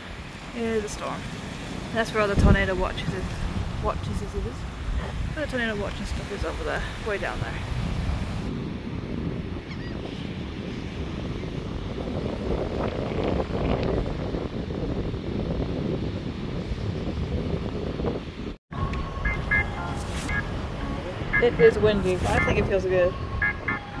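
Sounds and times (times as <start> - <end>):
wind buffeting microphone: 0.0 - 24.0.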